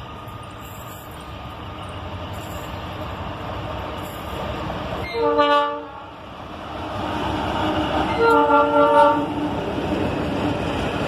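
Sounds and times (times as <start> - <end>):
diesel locomotives rumbling: 0.0 - 11.0.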